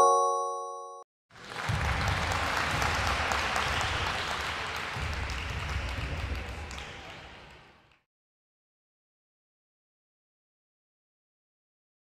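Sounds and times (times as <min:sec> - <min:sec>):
crowd applause: 0:01.3 - 0:08.0.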